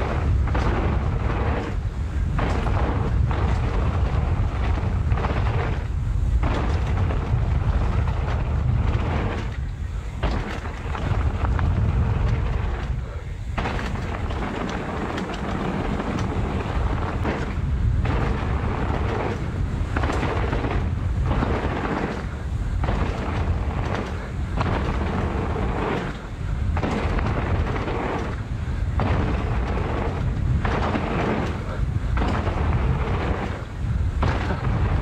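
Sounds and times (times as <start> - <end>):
bike tyres rattling over trail: 0.0 - 35.0
wind rumbling on microphone: 0.0 - 35.0.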